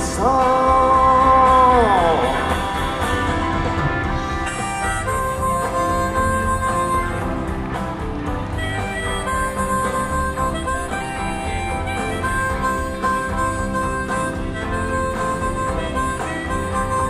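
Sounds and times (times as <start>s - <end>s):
person singing: 0.0s - 3.9s
guitar and band accompaniment: 0.0s - 17.0s
harmonica long held notes: 0.0s - 17.0s.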